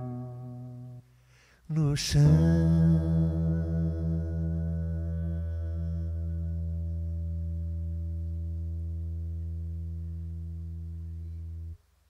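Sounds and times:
guitar chord ringing: 0.0 - 1.0
person singing: 0.0 - 1.0, 1.7 - 7.5.

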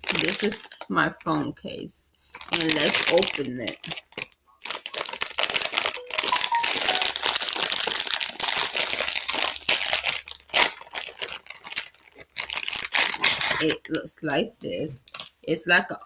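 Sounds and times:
plastic bag crinkling: 0.0 - 1.5, 2.3 - 13.9, 15.0 - 15.5.

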